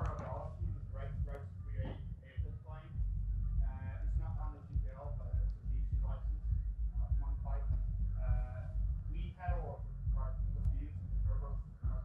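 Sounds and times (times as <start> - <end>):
distant person's voice: 0.0 - 12.0
steady low rumble: 0.0 - 12.0.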